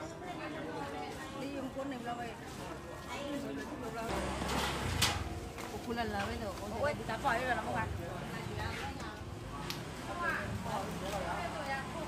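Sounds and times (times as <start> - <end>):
women talking: 5.7 - 9.4, 10.1 - 12.0.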